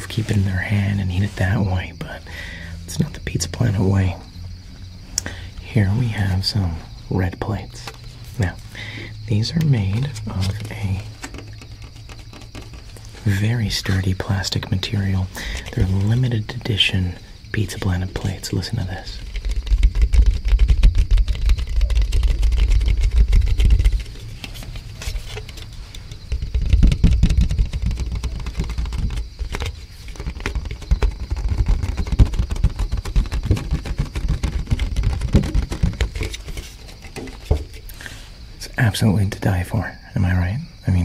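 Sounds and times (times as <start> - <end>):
handling rumble: 0.0 - 38.8
fingers tapping on plastic plate: 9.6 - 13.1, 19.2 - 37.8.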